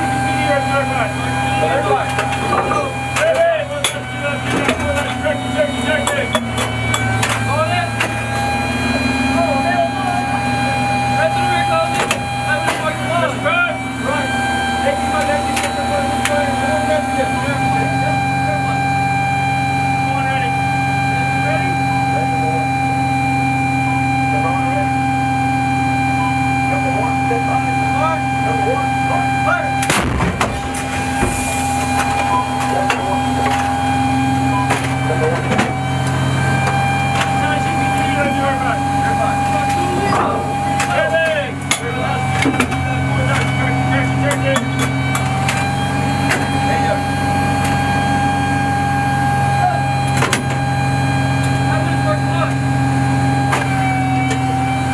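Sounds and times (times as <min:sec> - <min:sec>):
machinery hum and whine: 0:00.0 - 0:54.9
howitzer firing blast: 0:29.8 - 0:32.4.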